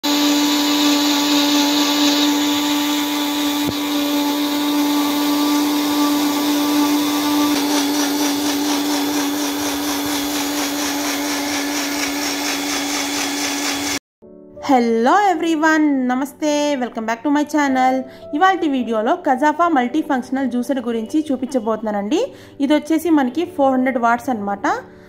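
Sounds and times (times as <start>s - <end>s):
juicer mixer motor running: 0.0s - 14.0s.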